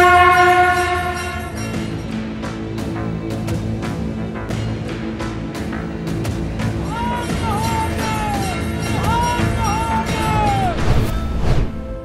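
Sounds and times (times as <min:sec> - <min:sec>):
horn note: 0:00.0 - 0:01.7.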